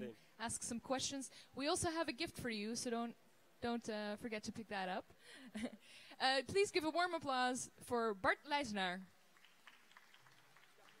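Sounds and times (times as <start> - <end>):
faint audience claps: 9.2 - 11.0.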